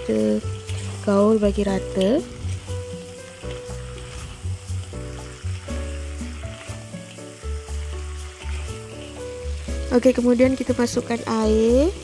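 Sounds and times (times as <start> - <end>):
background music: 0.0 - 12.0
crabs sizzling in a wok: 0.0 - 12.0.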